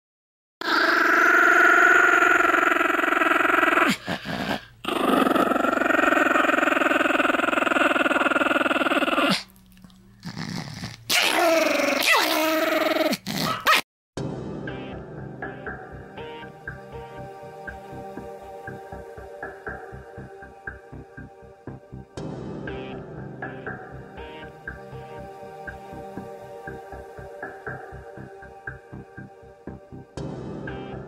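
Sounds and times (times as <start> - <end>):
dog growling: 0.6 - 13.8.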